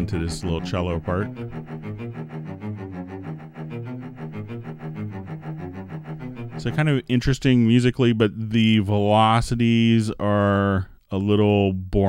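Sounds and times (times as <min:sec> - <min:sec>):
virtual cello low notes: 0:00.0 - 0:09.1.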